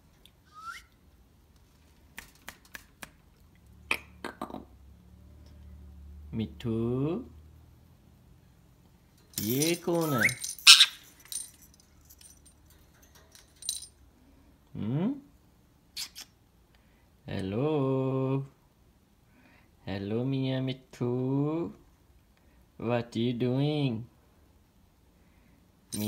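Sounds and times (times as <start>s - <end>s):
metallic jingle: 9.1s - 14.0s.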